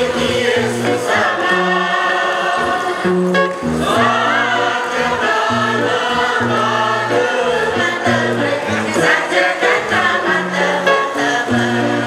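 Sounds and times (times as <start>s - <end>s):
women's choir singing chant: 0.0s - 12.0s.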